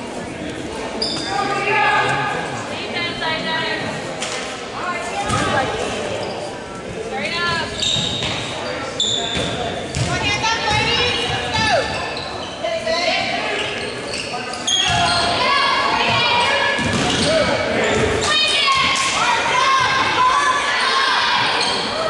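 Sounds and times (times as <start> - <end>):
echoing voices: 0.0 - 22.0.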